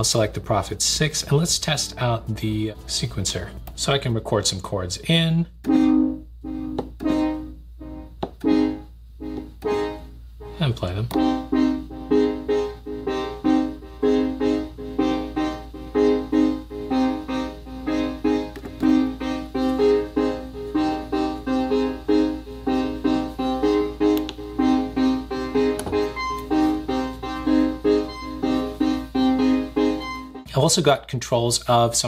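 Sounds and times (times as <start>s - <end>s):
synthesizer chords repeating: 5.6s - 30.5s.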